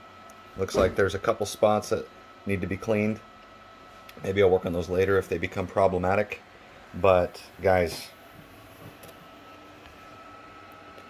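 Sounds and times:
faint steady hum: 0.0s - 11.0s
thin high whine: 0.0s - 11.0s.

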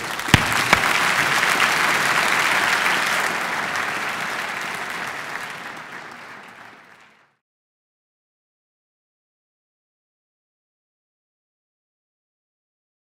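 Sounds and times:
audience applauding: 0.0s - 7.4s.

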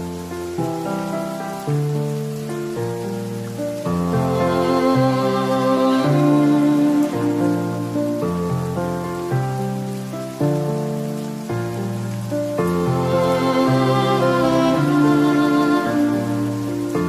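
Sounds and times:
falling rain hiss: 0.0s - 17.0s
slow calm instrumental music: 0.0s - 17.0s.

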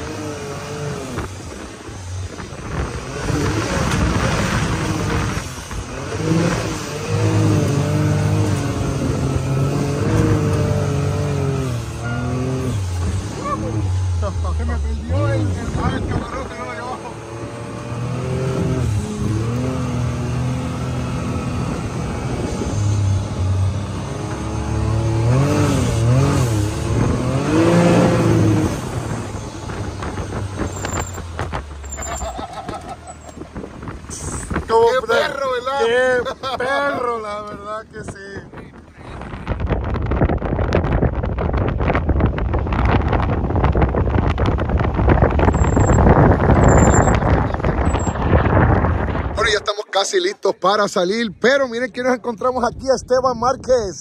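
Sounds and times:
off-road vehicle engine revving: 0.0s - 49.8s.

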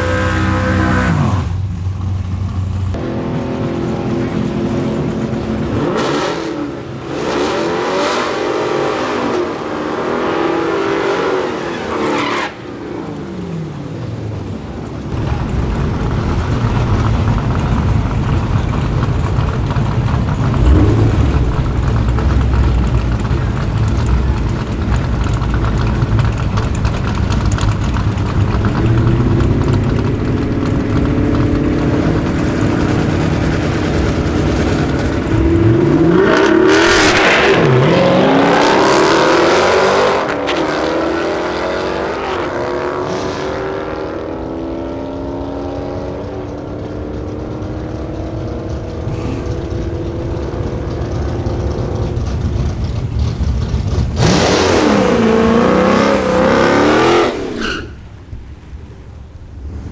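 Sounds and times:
car engines idling: 0.0s - 7.2s, 12.6s - 39.0s, 44.2s - 57.0s, 57.6s - 59.9s
car engines revving at full throttle: 0.0s - 59.9s.

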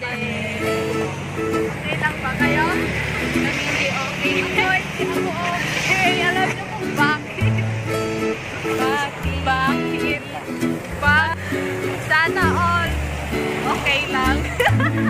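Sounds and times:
person singing: 0.0s - 7.4s
strummed string chords: 0.0s - 15.0s
bass line: 10.7s - 15.0s.

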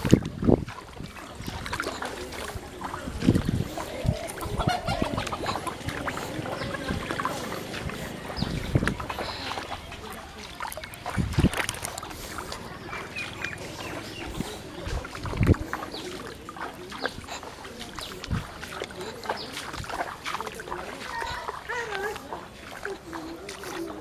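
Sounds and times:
footsteps splashing through mud: 0.0s - 24.0s.

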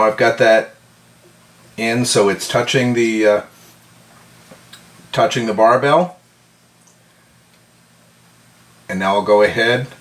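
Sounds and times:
man speaking: 0.0s - 0.8s, 1.8s - 3.6s, 5.1s - 6.2s, 8.9s - 10.0s
faint steady hum: 0.0s - 10.0s.

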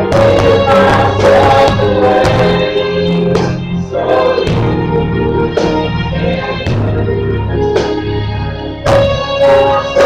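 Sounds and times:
group of voices singing: 0.0s - 10.0s
keyboard organ-like chords: 0.0s - 10.0s.

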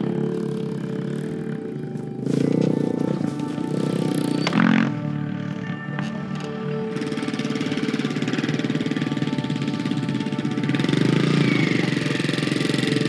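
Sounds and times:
motorcycle engine puttering: 0.0s - 13.0s
soft background music: 0.0s - 13.0s.

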